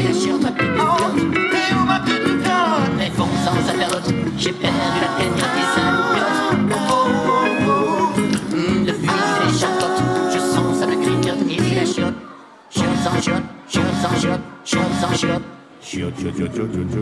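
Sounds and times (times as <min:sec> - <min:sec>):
electric guitar playing: 0:00.0 - 0:11.9
man singing: 0:00.0 - 0:12.2, 0:12.8 - 0:17.0.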